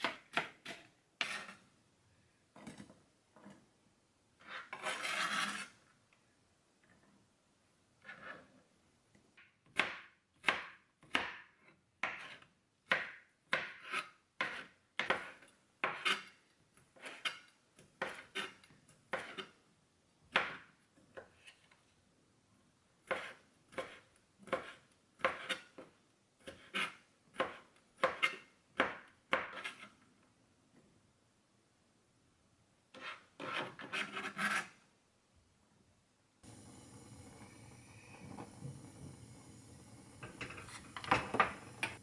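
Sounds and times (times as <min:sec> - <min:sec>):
knife scraping cutting board: 0:00.0 - 0:01.6, 0:04.4 - 0:05.8, 0:08.0 - 0:08.5, 0:12.0 - 0:12.5, 0:13.6 - 0:16.4, 0:17.0 - 0:19.6, 0:23.1 - 0:25.8, 0:26.4 - 0:28.5, 0:29.3 - 0:30.0, 0:32.9 - 0:34.8.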